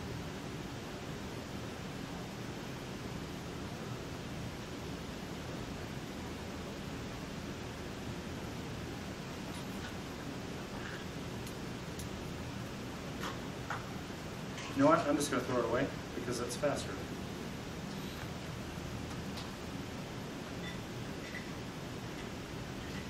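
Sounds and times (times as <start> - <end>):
room tone hiss: 0.0 - 23.0.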